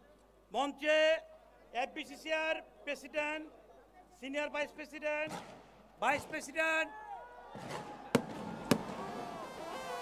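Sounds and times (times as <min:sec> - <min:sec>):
fireworks sharp bangs: 0:07.6 - 0:10.0.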